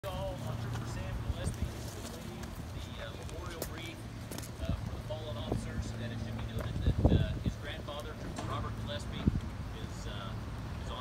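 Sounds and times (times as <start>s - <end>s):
footsteps on pavement: 0.0s - 9.6s.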